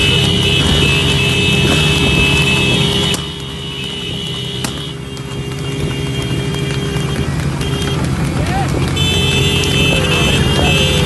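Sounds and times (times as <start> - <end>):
motorcycle engines rumbling: 0.0 - 11.0.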